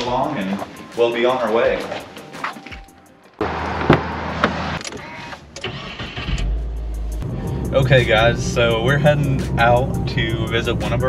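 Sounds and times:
car engine starting: 3.4 - 11.0.

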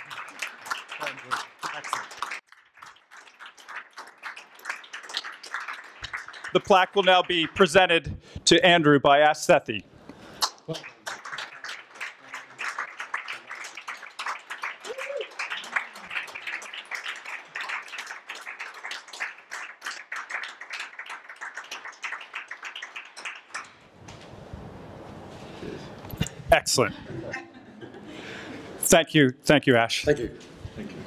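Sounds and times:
audience applauding: 0.0 - 7.9, 10.4 - 23.8.

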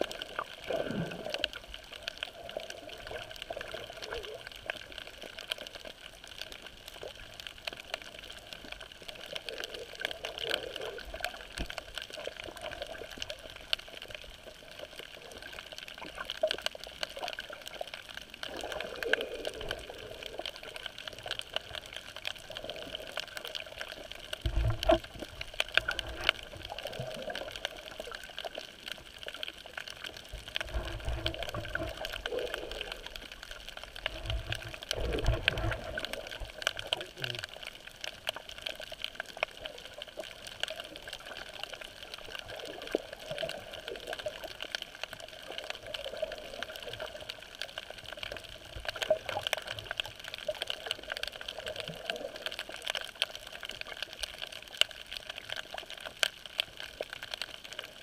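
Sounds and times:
muffled underwater water noise: 0.0 - 58.0.

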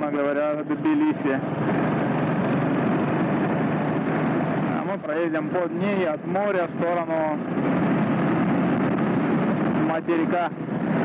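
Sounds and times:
wind and road noise: 0.0 - 11.0
motorcycle engine running: 1.4 - 4.7, 7.4 - 9.8.

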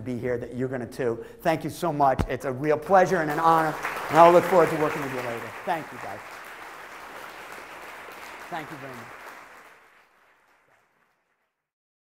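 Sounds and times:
audience applauding: 3.2 - 11.6.

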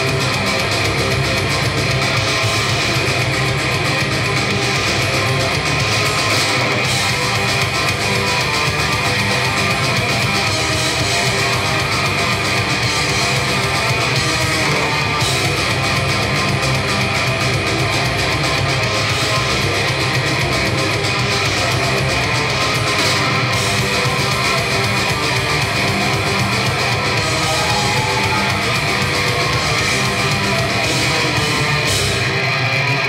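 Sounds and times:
distorted electric guitars: 0.0 - 33.0.

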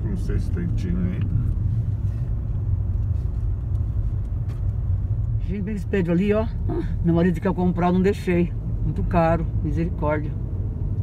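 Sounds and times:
car cabin engine and road noise: 0.0 - 11.0.

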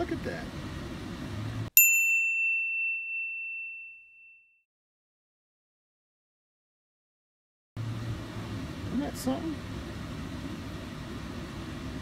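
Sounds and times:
bell-like ding: 1.8 - 4.6.

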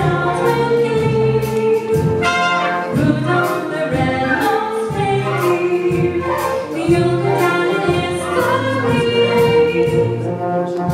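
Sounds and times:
woman singing: 0.0 - 10.3
brass: 0.0 - 10.9
repeating bass notes: 0.0 - 10.9
saxophones: 0.0 - 10.9
violins: 0.0 - 10.9
flutes: 4.0 - 9.9.

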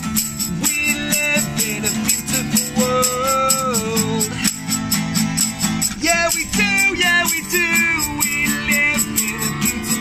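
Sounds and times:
acoustic guitars strumming: 0.0 - 10.0
tambourine beat: 0.0 - 10.0.

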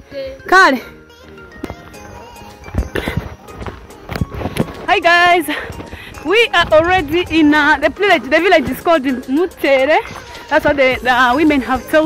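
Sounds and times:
footsteps on dirt path: 1.2 - 12.0.

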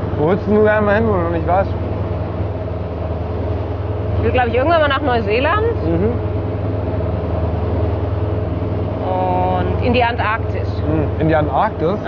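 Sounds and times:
vehicle engine drone: 0.0 - 12.0.

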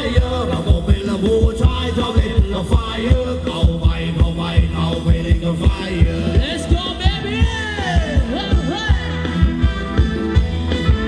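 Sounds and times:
fast heavy bass drum beat: 0.0 - 11.0
live band dance music: 0.0 - 11.0.

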